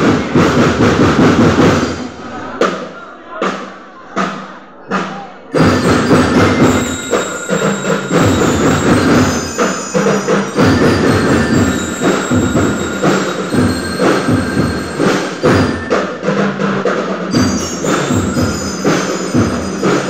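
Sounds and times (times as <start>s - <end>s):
marching band playing: 0.0s - 4.4s, 5.6s - 20.0s
marching drums: 0.0s - 20.0s
bell-like metallic tones: 5.6s - 20.0s.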